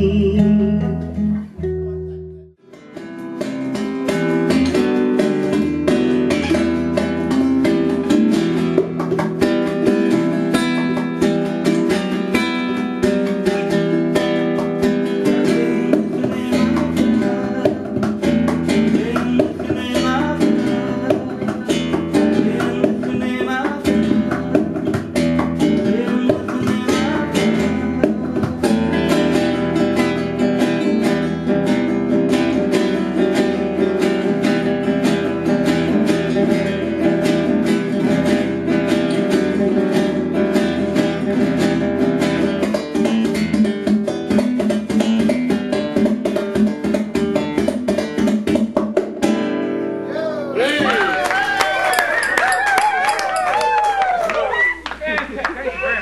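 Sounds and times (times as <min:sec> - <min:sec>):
lap-played acoustic guitar: 0:00.0 - 0:54.1.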